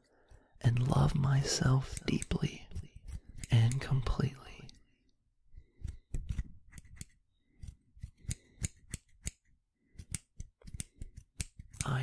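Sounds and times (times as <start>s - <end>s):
scissors snipping: 1.7s - 4.2s, 5.8s - 12.0s.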